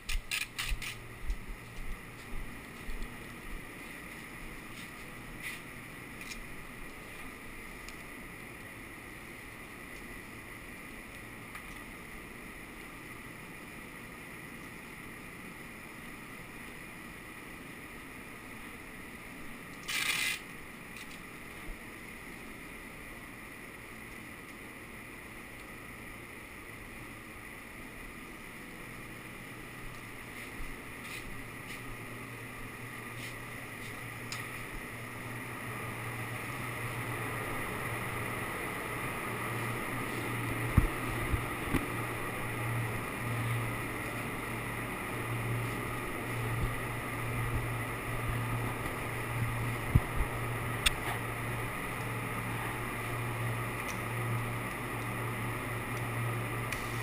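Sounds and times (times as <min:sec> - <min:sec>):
blower rushing and humming: 0:00.0 - 0:57.0.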